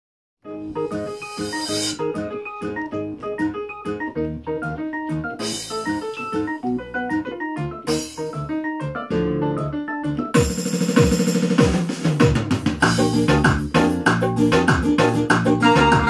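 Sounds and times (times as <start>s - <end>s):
keyboard playing fast melody: 0.4s - 16.0s.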